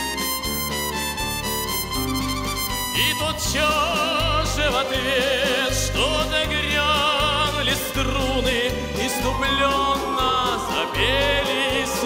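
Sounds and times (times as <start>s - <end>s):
live band playing a waltz: 0.0s - 12.0s.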